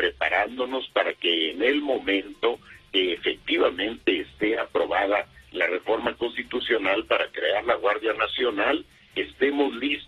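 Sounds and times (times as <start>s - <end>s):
man talking over telephone: 0.0s - 10.0s.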